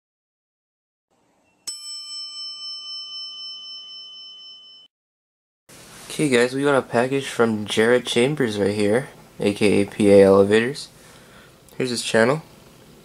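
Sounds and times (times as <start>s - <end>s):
bell ding ringing: 1.6s - 4.9s.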